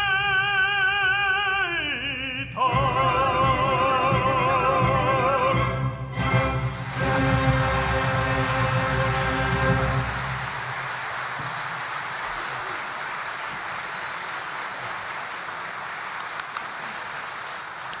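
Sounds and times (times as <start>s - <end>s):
orchestra chord: 2.8s - 10.5s
audience applause: 6.6s - 18.0s.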